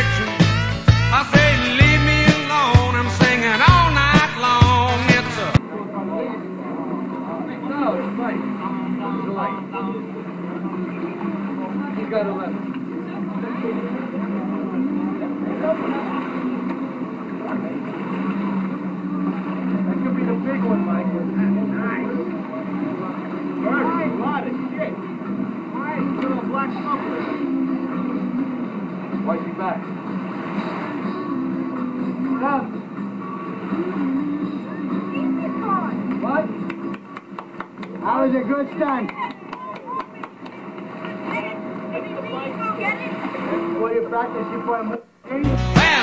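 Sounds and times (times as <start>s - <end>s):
motorboat engine humming: 0.0s - 46.0s
indistinct voices talking: 39.1s - 46.0s.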